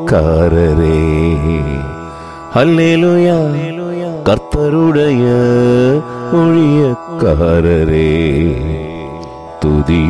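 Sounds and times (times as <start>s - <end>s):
man singing a wavering note: 0.0s - 10.0s.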